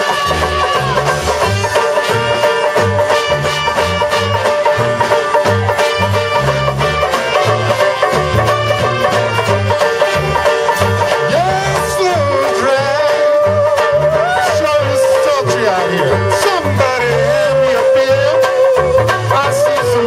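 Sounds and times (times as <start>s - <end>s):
banjo: 0.0s - 20.0s
brass band playing: 0.0s - 20.0s
horn bending notes: 0.0s - 20.0s
tuba bass line: 0.0s - 20.0s.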